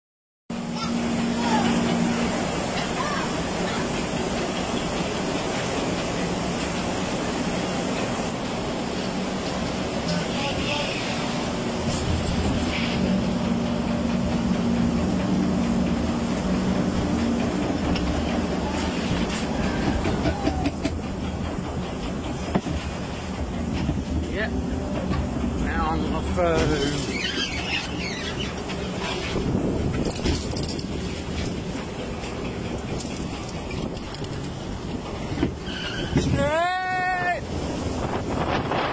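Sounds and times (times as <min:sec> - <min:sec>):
conveyor mechanical hum: 0:00.5 - 0:38.9
conveyor clatter and rattling: 0:00.6 - 0:36.6.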